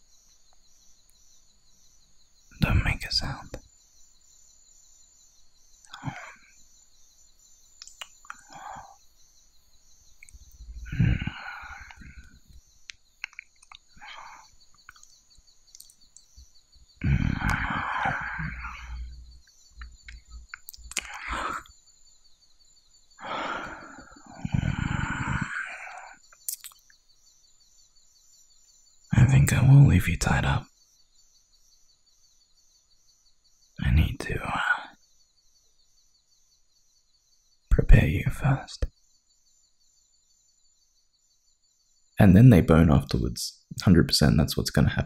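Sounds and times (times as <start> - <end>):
chirping forest ambience: 0.0 - 45.0
breathy sighs: 5.9 - 6.5, 8.3 - 9.0, 10.7 - 12.4, 17.0 - 19.2, 20.9 - 21.7, 23.2 - 26.2
wet licking mouth noises: 26.5 - 26.8.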